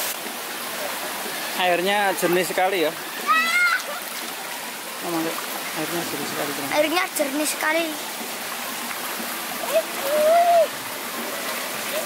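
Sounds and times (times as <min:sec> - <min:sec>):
stream rushing over rocks: 0:00.0 - 0:12.0.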